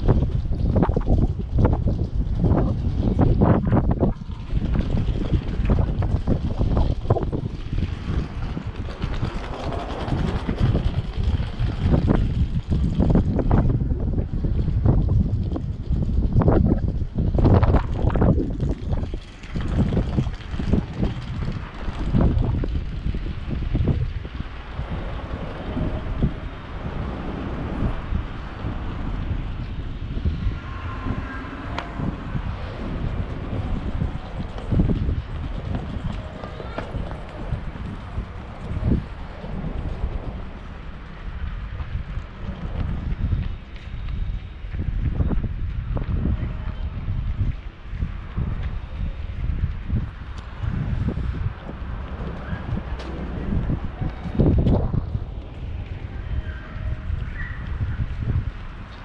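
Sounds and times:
busy city street noise: 0.0s - 59.0s
wind buffeting microphone: 0.0s - 59.0s.

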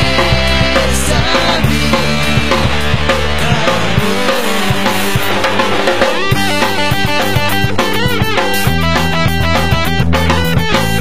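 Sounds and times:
choppy electric guitar chords: 0.0s - 11.0s
punk rock band playing: 0.0s - 11.0s.

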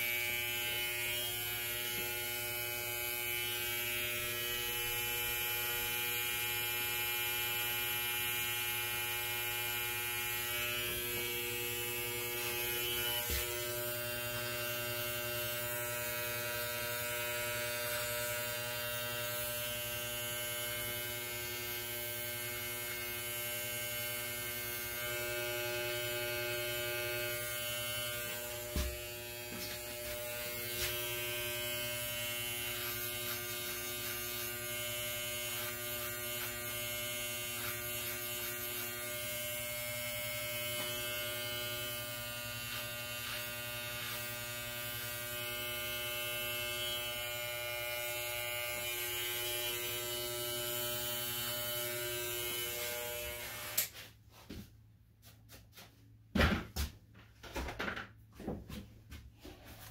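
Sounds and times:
electric hair clipper humming: 0.0s - 54.0s
knock: 56.3s - 58.7s.

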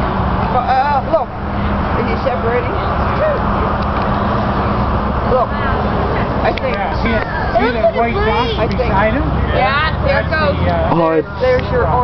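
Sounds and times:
distant voices: 0.0s - 12.0s
highway traffic roar: 0.0s - 12.0s.

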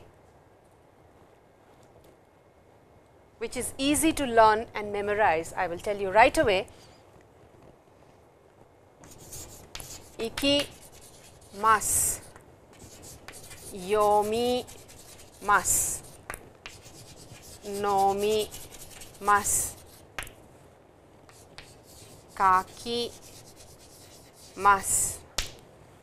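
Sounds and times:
chalk writing on chalkboard: 9.0s - 20.4s, 21.3s - 25.2s.

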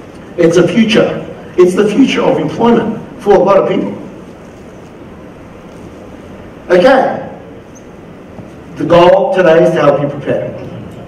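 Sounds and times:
even steady hiss: 0.0s - 11.0s.

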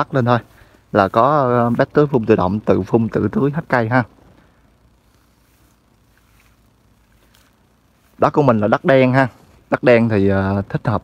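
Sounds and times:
faint rustles: 0.0s - 10.2s
low steady hiss: 0.0s - 11.0s.

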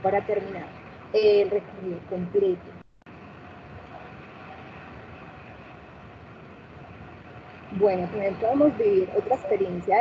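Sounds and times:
faint steady hum: 0.0s - 10.0s
low rumble and hiss: 0.0s - 10.0s.

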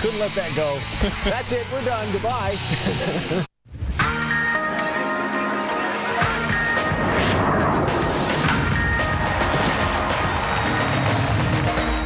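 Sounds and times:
dramatic promo music: 6.1s - 12.0s
noisy swells: 6.6s - 11.1s
sharp hits: 6.7s - 11.2s.

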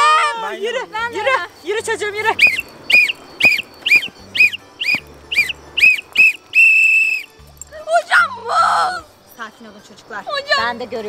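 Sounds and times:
background music with bass: 1.0s - 9.3s
whistle blasts: 2.2s - 7.4s.

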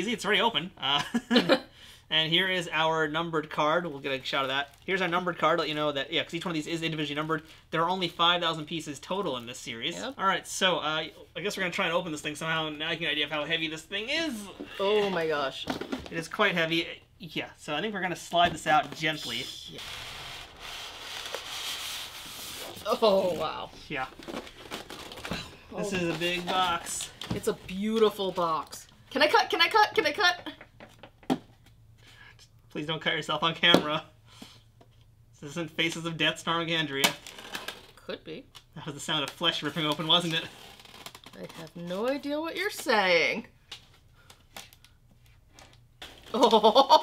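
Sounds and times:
foam box scraping cardboard: 19.8s - 23.3s.

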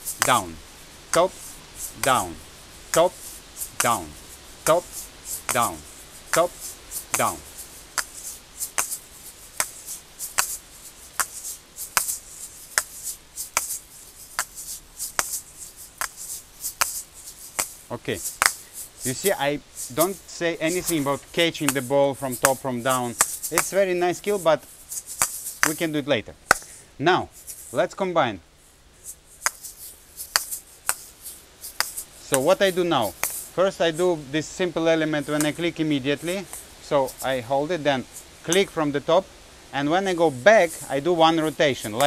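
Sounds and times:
asalato balls clacking: 0.0s - 23.8s, 24.6s - 26.8s, 29.3s - 33.6s
seed shaker rattle: 0.0s - 27.9s, 28.6s - 38.8s, 40.1s - 42.0s.

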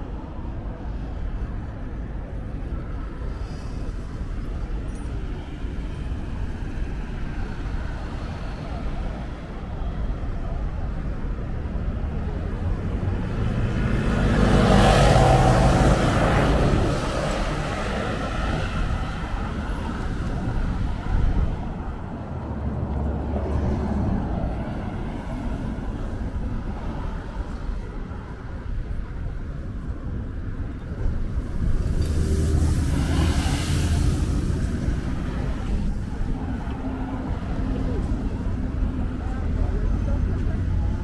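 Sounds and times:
road traffic: 0.0s - 41.0s
vehicle passing close: 31.3s - 39.6s.

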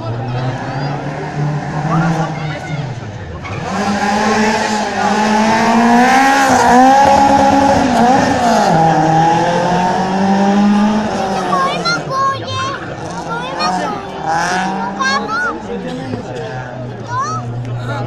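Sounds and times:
rally car engine revving: 0.0s - 18.0s.

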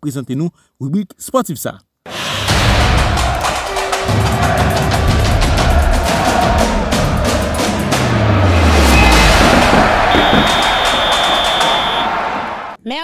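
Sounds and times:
jingle with drums and percussion: 2.5s - 12.2s
high held tone: 9.9s - 12.1s.

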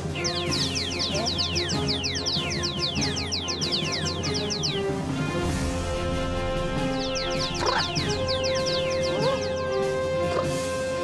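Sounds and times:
background music: 0.0s - 11.0s
high whistled chirps falling in pitch: 0.1s - 5.0s, 6.8s - 9.9s.

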